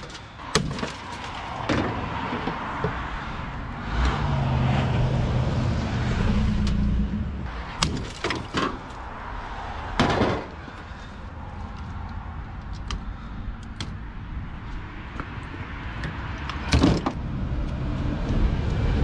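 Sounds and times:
sledgehammer hitting appliance parts: 0.0s - 2.6s, 7.8s - 8.9s, 10.0s - 10.6s.

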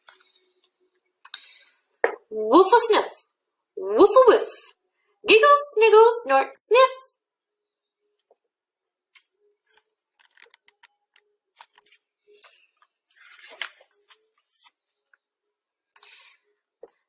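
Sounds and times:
paper clicks and crinkles: 9.1s - 15.2s
page rustling: 9.2s - 10.9s, 11.5s - 15.0s.

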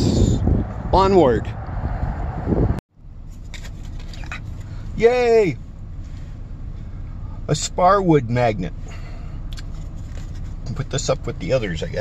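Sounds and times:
wind buffeting microphone: 0.0s - 2.8s
low rumble inside van: 0.0s - 12.0s.

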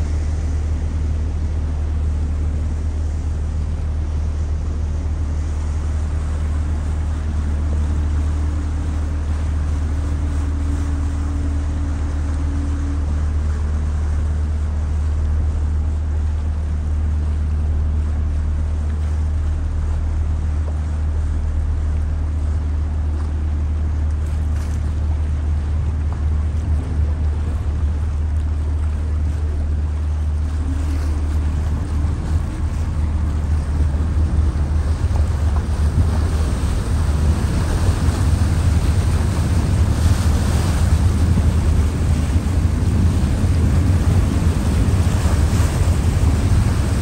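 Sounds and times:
ship engine rumbling: 0.0s - 47.0s
water washing along hull: 0.0s - 47.0s
wind on microphone: 0.0s - 47.0s.

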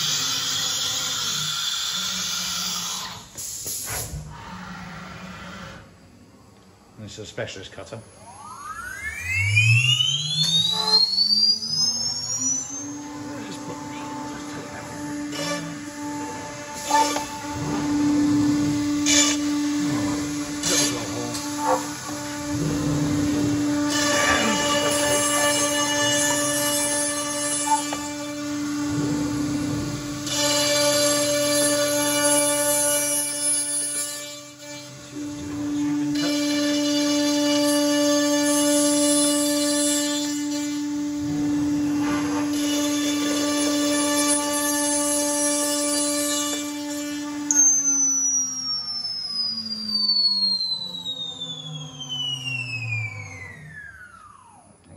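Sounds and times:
cutter machining board: 0.0s - 6.0s, 7.8s - 54.9s
router spindle high whine: 0.0s - 54.9s.

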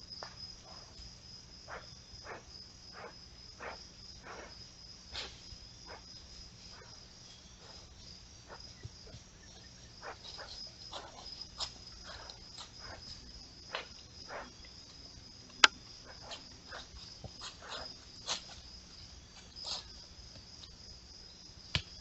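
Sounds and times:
crickets trilling: 0.0s - 22.0s.

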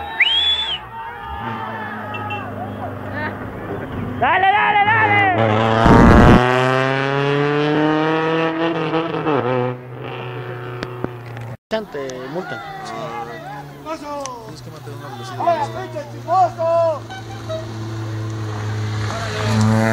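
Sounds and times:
spectators shouting: 0.0s - 5.4s, 11.8s - 17.2s, 19.0s - 19.6s
rally car engine revving: 1.2s - 11.5s, 15.5s - 19.9s
car passing by: 14.6s - 19.9s.

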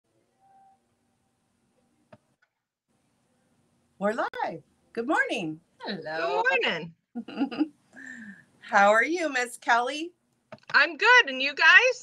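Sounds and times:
brief faint tone: 0.2s - 0.9s.

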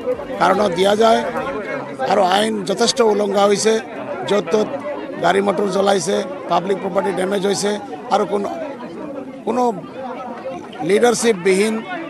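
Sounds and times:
background chatter: 0.0s - 12.0s
man talking: 0.3s - 8.6s, 9.5s - 9.8s, 10.6s - 11.9s.

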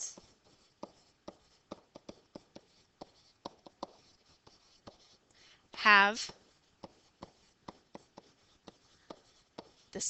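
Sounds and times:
stylus ticking on writing surface: 0.1s - 5.2s, 6.3s - 10.0s.

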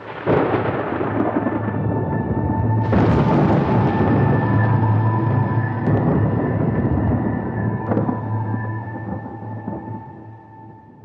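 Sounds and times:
thunder rumble: 0.0s - 11.0s.

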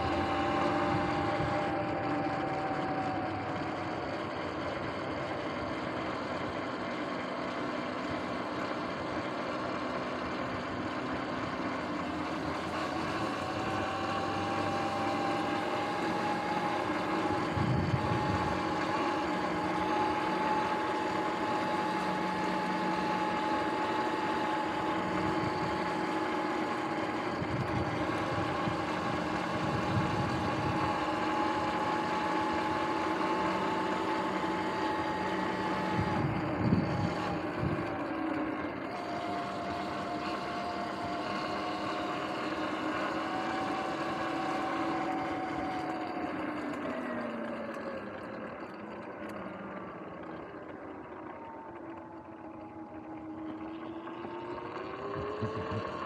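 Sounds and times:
electric motor whining: 0.0s - 56.0s
wind noise: 17.3s - 18.7s, 27.3s - 30.9s, 36.0s - 37.9s.

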